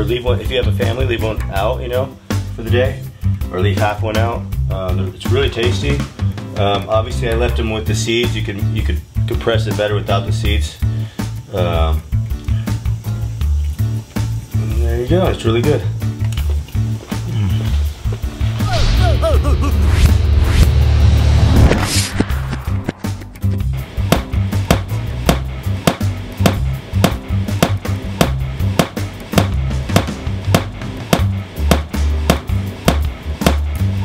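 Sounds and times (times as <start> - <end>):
music with heavy bass line: 11.5 - 34.0.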